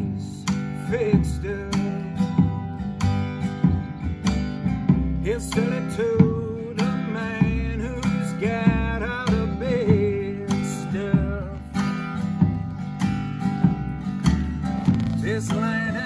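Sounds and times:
acoustic band playing: 0:00.0 - 0:16.0
double bass: 0:00.0 - 0:16.0
steady drum beat: 0:00.0 - 0:16.0
strummed acoustic guitar: 0:00.0 - 0:16.0
bending melody line: 0:09.1 - 0:16.0.

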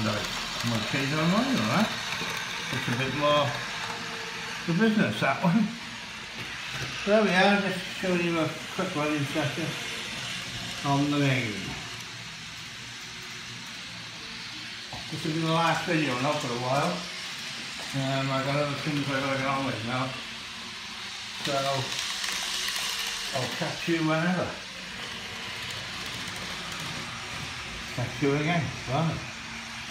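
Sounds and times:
hiss: 0:00.0 - 0:29.9
model train motor hum: 0:00.0 - 0:29.9.

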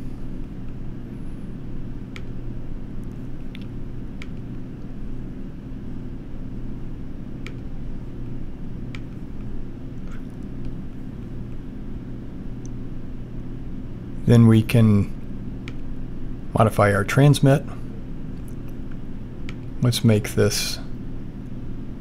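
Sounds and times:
steady low hum: 0:00.0 - 0:22.0
computer mouse clicks: 0:03.0 - 0:04.6, 0:07.4 - 0:07.7, 0:15.6 - 0:15.8.

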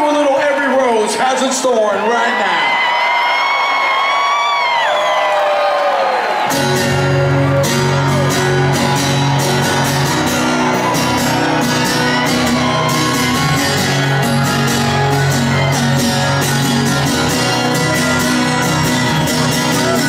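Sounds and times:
fans whooping: 0:01.5 - 0:20.0
electric bass: 0:06.6 - 0:20.0.

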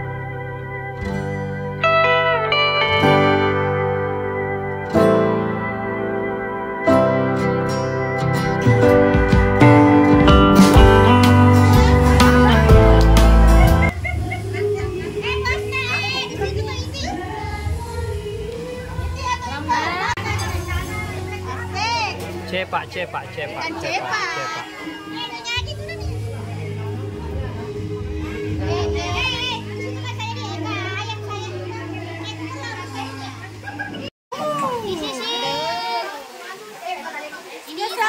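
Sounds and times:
background music: 0:00.0 - 0:34.1
children calling and chattering: 0:00.0 - 0:38.0
high-pitched voices talking: 0:11.2 - 0:22.2.

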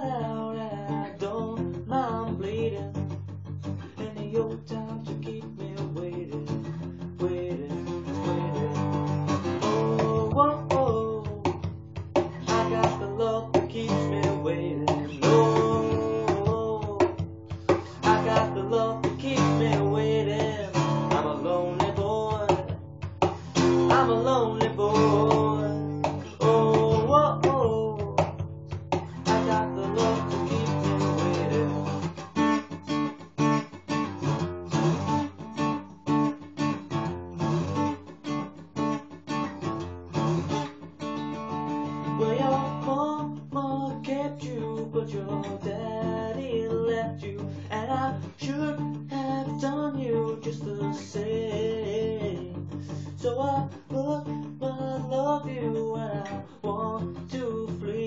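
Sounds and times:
man singing: 0:00.0 - 0:32.2, 0:42.0 - 0:58.0
acoustic guitar strumming: 0:00.0 - 0:58.0.

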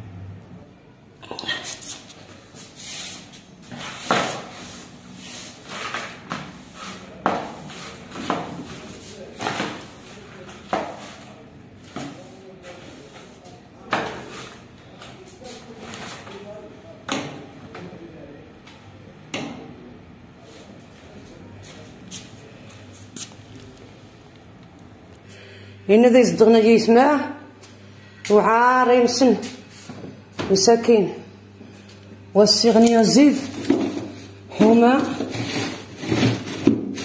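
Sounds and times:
broom sweeping a tiled floor: 0:01.5 - 0:16.5, 0:21.6 - 0:23.5, 0:29.1 - 0:30.1, 0:32.6 - 0:37.0
plastic dustpan scraping: 0:32.8 - 0:37.0.

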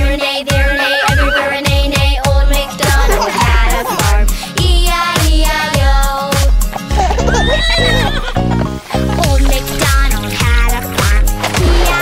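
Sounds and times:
bouncy children's song music: 0:00.0 - 0:12.0
horse whinny: 0:00.6 - 0:01.6.

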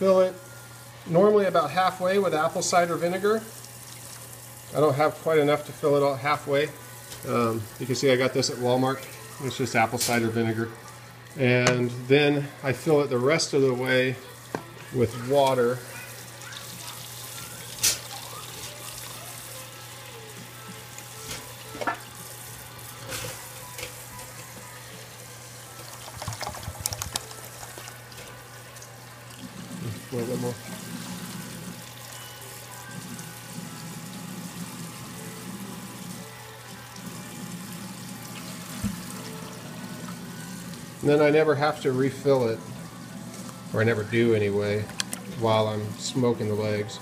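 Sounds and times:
water running into plastic bottle: 0:25.6 - 0:32.2, 0:36.7 - 0:41.1
water glugging from bottle: 0:25.8 - 0:28.3.

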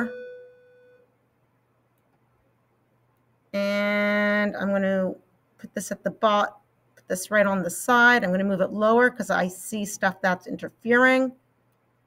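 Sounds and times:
woman speaking: 0:03.6 - 0:11.4.

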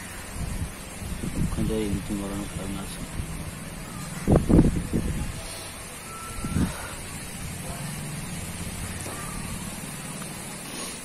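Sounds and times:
short high beep: 0:06.0 - 0:06.9.

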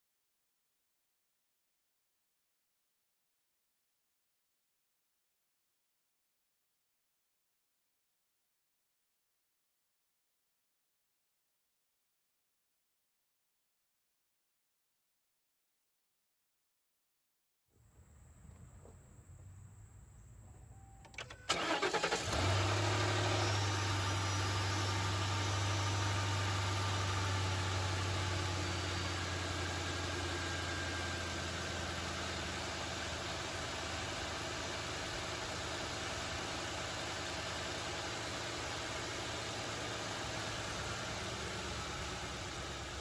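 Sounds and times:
car engine cranking: 0:21.0 - 0:30.3
car engine idling: 0:21.1 - 0:43.0.

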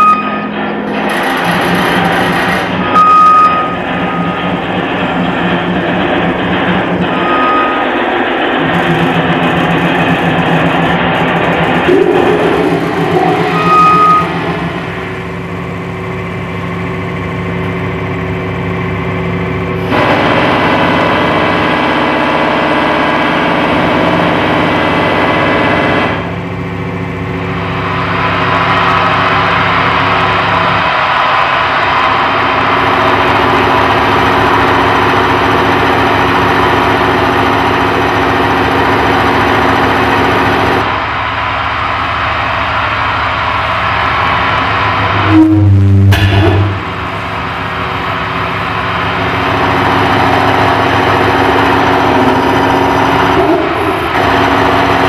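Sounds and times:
electronic drone music: 0:03.8 - 0:22.0, 0:40.9 - 0:53.8.

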